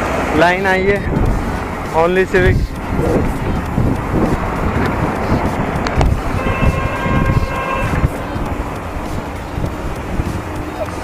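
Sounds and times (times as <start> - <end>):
wind buffeting microphone: 0.0 - 11.0
held multi-pitch tone: 2.9 - 9.6.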